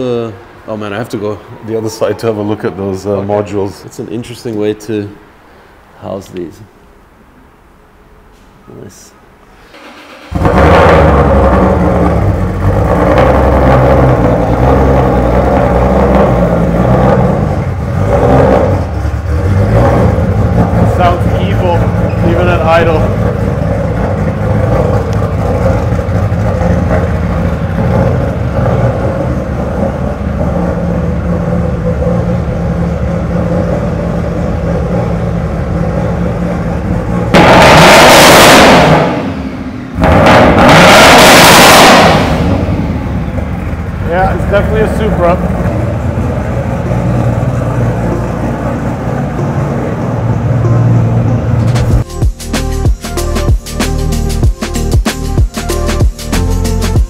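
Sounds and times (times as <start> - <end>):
car engine idling: 9.2 - 57.0
engine revving blips: 9.6 - 57.0.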